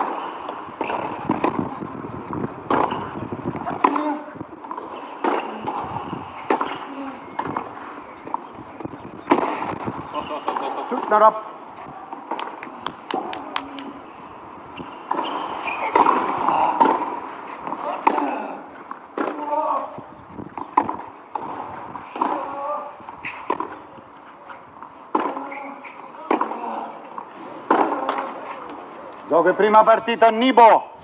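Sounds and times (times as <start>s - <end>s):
tennis ball struck by racquet: 0.0s - 8.4s, 9.2s - 11.2s, 14.8s - 19.9s, 20.5s - 23.9s, 25.1s - 28.8s
tennis ball bouncing: 0.0s - 11.3s, 12.1s - 24.0s, 24.8s - 29.0s
murmuring voices: 3.6s - 9.2s, 10.0s - 14.6s, 22.2s - 29.3s.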